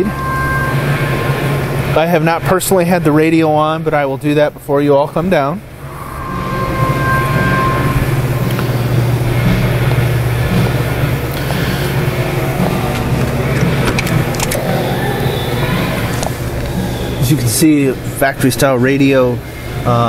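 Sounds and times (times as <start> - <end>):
low mechanical drone: 0.0 - 20.0.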